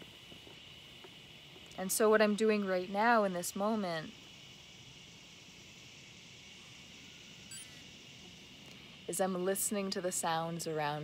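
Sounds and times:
high insect drone: 0:00.0 - 0:11.0.

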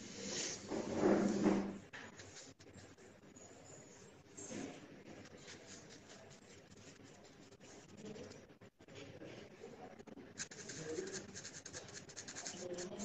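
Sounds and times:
pencil scratching on paper: 0:10.4 - 0:13.0.

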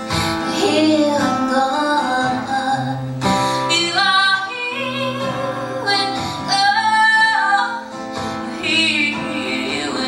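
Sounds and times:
acoustic guitar: 0:00.0 - 0:10.0
woman singing: 0:00.1 - 0:10.0.

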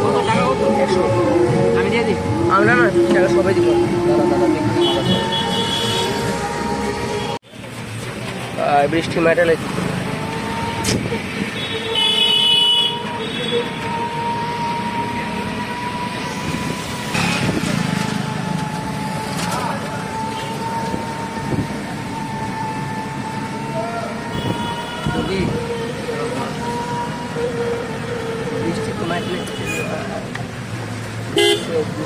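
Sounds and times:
passing traffic: 0:00.0 - 0:32.0
rickshaw ride on wet road: 0:00.0 - 0:32.0
vehicle horn honking: 0:04.8 - 0:06.4, 0:11.5 - 0:14.2, 0:24.3 - 0:26.0, 0:29.1 - 0:30.1, 0:31.3 - 0:31.8.

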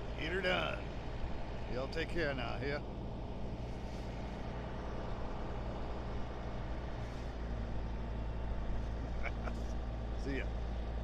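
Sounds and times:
diesel machinery rumbling: 0:00.0 - 0:11.0.

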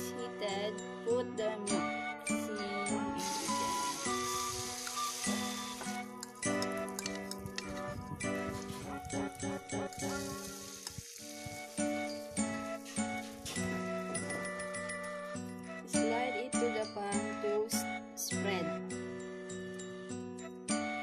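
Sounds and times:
chiming background music: 0:00.0 - 0:10.8, 0:11.5 - 0:21.0
batter sizzling in hot oil: 0:03.2 - 0:14.6.

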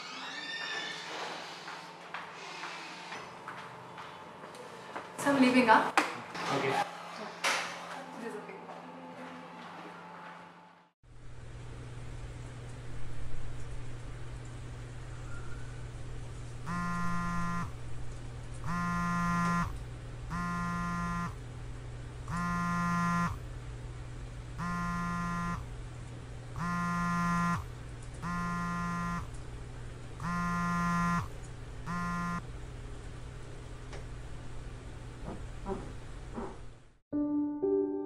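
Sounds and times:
mobile phone vibrating: 0:16.7 - 0:17.8, 0:18.6 - 0:21.4, 0:22.3 - 0:23.4, 0:24.6 - 0:25.7, 0:26.6 - 0:29.3, 0:30.2 - 0:32.4.

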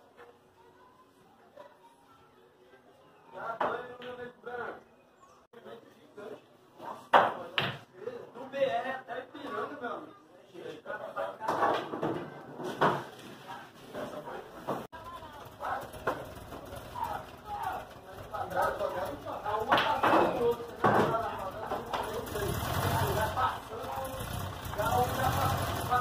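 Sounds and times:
men's voices: 0:15.6 - 0:26.0
pool balls knocking: 0:19.6 - 0:22.0.

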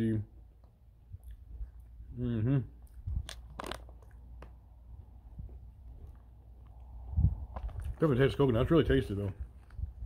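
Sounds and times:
sharp crunches: 0:02.9 - 0:04.6.

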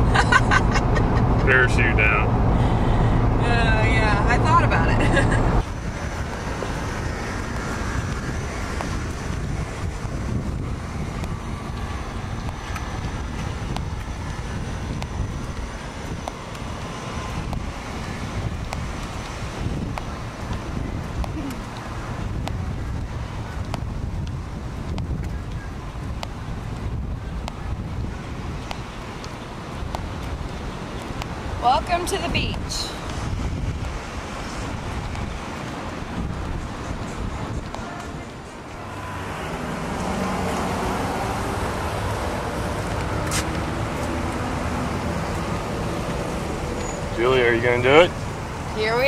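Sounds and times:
wind buffeting microphone: 0:00.0 - 0:49.0.

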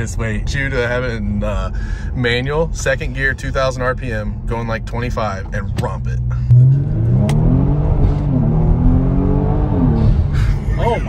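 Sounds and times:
car engine at full throttle: 0:04.2 - 0:11.0.

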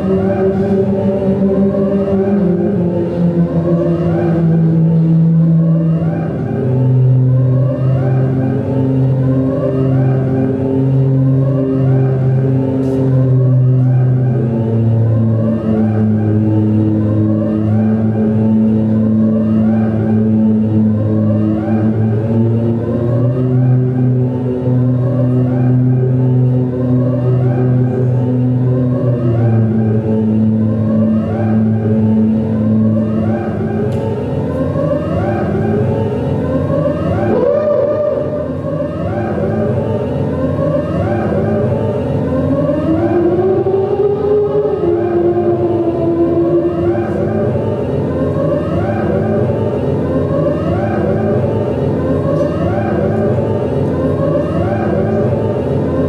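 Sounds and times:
electronic drone music: 0:00.0 - 0:56.0.

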